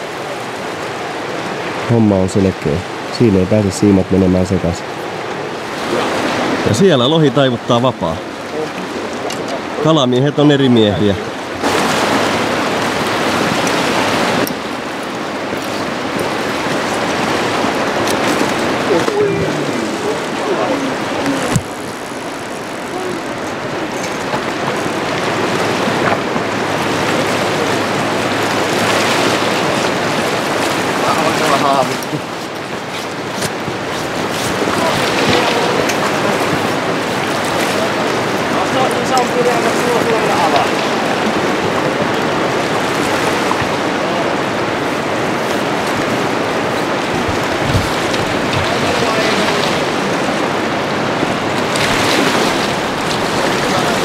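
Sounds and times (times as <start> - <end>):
river rapids rushing: 0.0 - 54.0
faint voices: 18.6 - 25.1, 34.5 - 43.0, 46.6 - 51.2.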